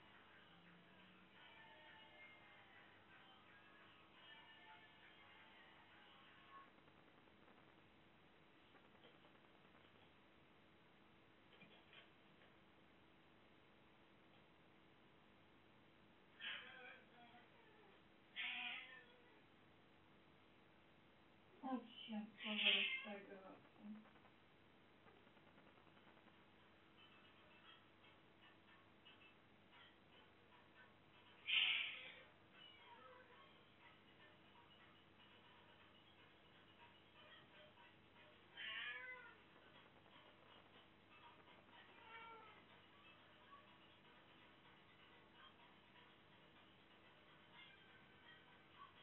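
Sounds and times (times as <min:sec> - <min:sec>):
cat meowing: 0:18.4 - 0:19.1, 0:22.4 - 0:23.2, 0:31.5 - 0:32.2, 0:38.5 - 0:39.4.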